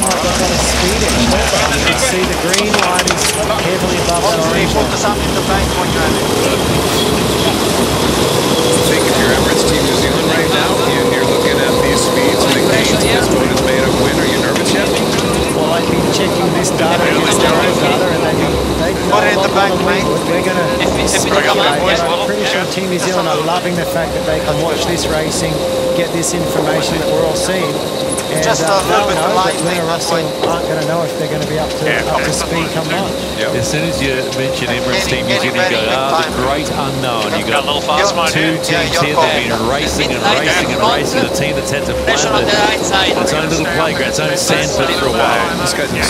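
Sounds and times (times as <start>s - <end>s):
continuous humming tone: 0.0s - 46.0s
crew voices talking: 0.0s - 46.0s.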